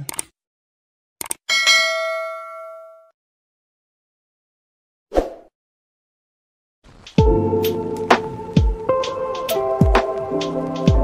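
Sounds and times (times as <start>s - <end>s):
quick clicks: 1.2s - 1.4s
bell ding: 1.5s - 3.1s.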